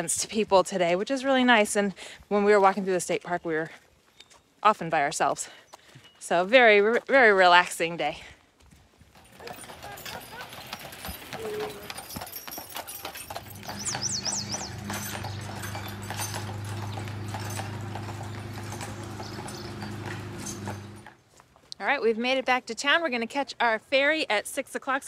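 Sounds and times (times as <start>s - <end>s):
horse hooves on paved street: 0.0s - 22.4s
high chirping: 13.4s - 21.1s.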